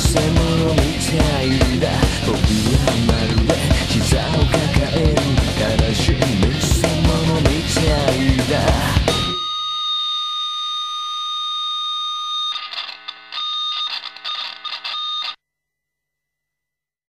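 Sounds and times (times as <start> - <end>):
heavy rock band with guitar: 0.0 - 9.4
held high tone: 9.0 - 11.2.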